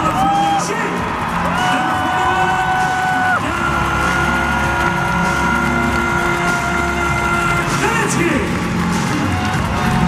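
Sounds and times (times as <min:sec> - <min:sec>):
arena music: 0:00.0 - 0:10.0
crowd noise: 0:00.0 - 0:10.0.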